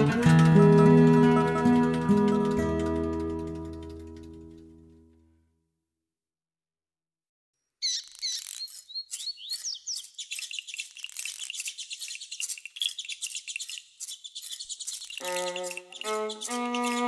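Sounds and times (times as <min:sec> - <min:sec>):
birds chirping: 0:07.7 - 0:17.0
whistled glides: 0:08.6 - 0:17.0.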